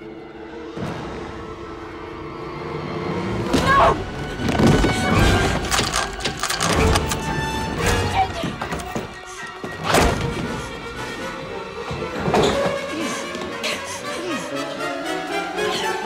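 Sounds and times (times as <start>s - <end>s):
tense orchestral score: 0.0s - 16.0s
thuds and crashes of struggle: 3.5s - 7.1s, 7.8s - 10.6s.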